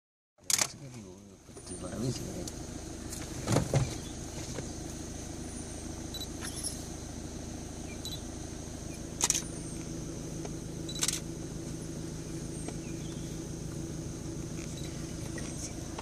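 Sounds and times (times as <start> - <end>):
steady low hum: 0.4 - 16.0
camera shutter clicks: 9.2 - 9.4.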